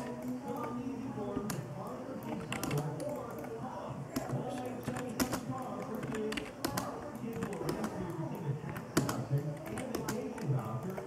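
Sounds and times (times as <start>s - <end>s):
computer keyboard key clicks: 2.2s - 8.1s, 8.7s - 11.0s.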